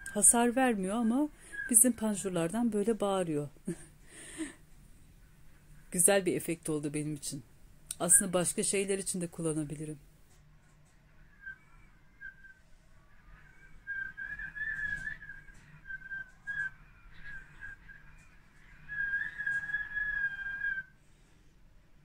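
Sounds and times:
wind whistling through roller shutters: 13.9s - 20.8s.

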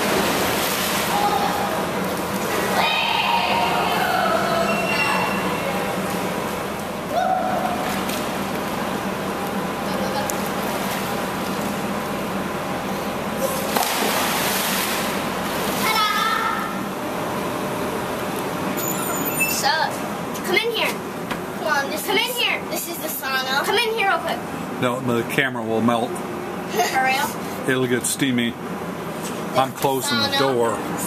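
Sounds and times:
water splashing: 0.0s - 5.0s, 13.5s - 16.2s
children's voices and shouts: 2.7s - 5.4s
body splashing into water: 13.7s - 15.1s.

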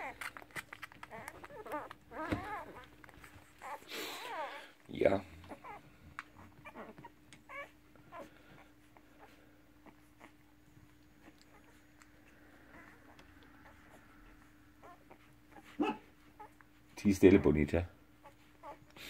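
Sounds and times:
puppies squeaking and whimpering: 0.0s - 19.0s.

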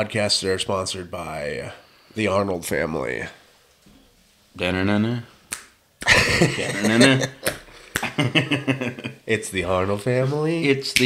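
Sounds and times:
sharp snap: 5.5s - 5.8s
loud burst of laughter: 6.0s - 9.2s
men's voices: 6.0s - 11.0s.

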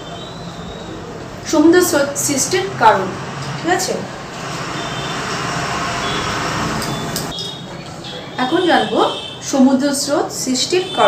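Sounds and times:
road vehicle passing: 0.0s - 9.2s.

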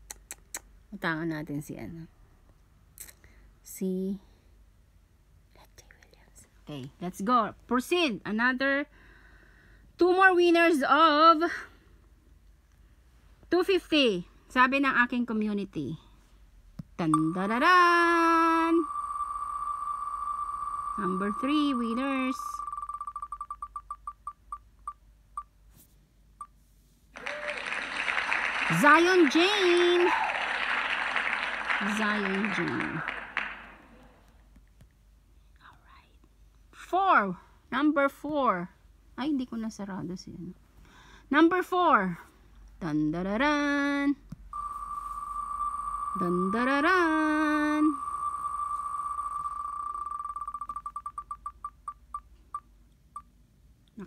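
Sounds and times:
prize wheel ticking: 17.2s - 24.5s, 44.6s - 52.3s
applause sound effect: 27.2s - 33.9s.

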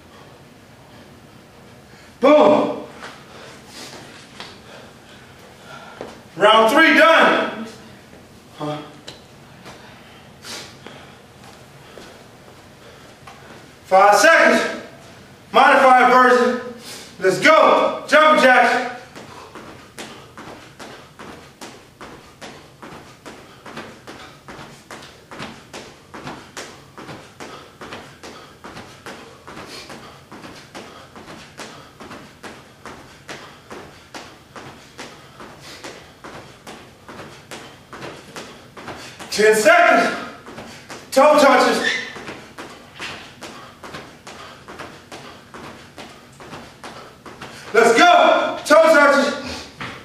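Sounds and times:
man's loud voice: 2.2s - 3.0s, 6.4s - 7.8s, 13.9s - 19.1s, 39.3s - 40.4s, 41.1s - 42.0s, 47.7s - 49.6s
feet landing on hard floor: 19.1s - 39.3s, 40.0s - 47.8s.

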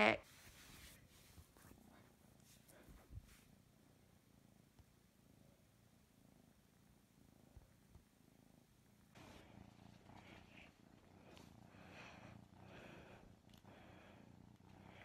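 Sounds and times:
kitten purring: 0.0s - 15.0s
soft rustling: 0.2s - 3.8s, 9.1s - 12.2s.

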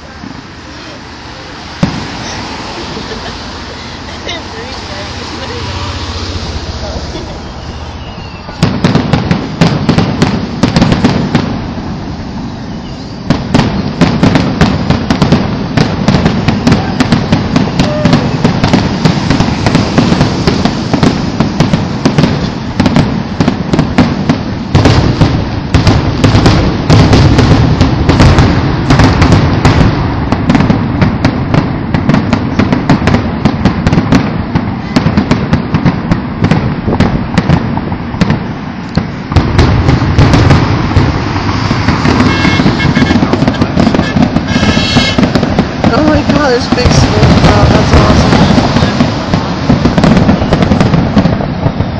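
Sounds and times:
fireworks cracks and bangs: 0.0s - 51.9s.

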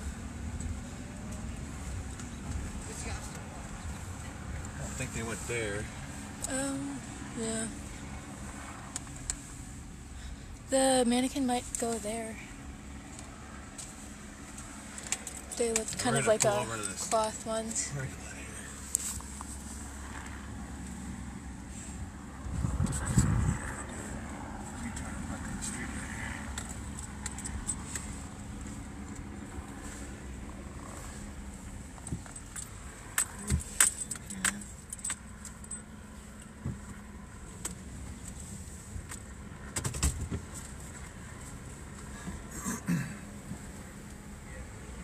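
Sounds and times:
engine and road hum: 0.0s - 45.0s.

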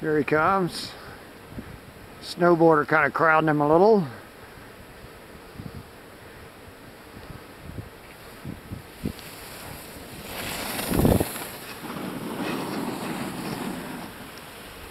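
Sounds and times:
wind buffeting microphone: 4.9s - 14.9s
skis sliding over snow: 8.0s - 14.9s.

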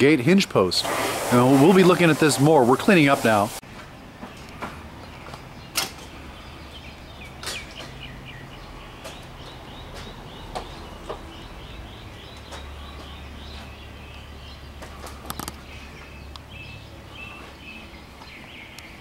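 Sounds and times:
bird chirping: 4.3s - 19.0s
sharp clicks: 15.0s - 15.6s.

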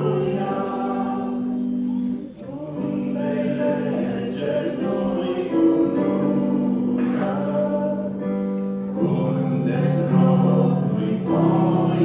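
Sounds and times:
woman and man singing a hymn: 0.0s - 12.0s.

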